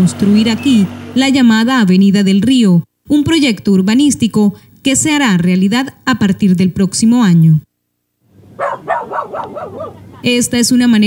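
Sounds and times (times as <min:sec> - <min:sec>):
dog barking: 0:08.5 - 0:10.3.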